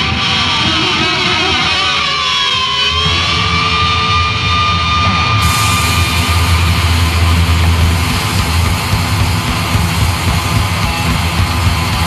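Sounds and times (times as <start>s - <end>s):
bass guitar: 0.0s - 12.0s
distorted electric guitars: 0.0s - 12.0s
drums playing: 5.2s - 12.0s.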